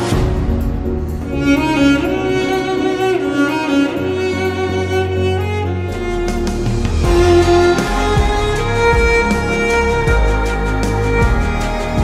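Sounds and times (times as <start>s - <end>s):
bowed cello melody: 0.0s - 12.0s.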